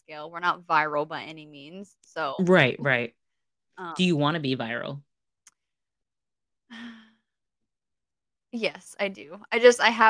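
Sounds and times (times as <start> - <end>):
woman sighing: 6.7 - 7.2.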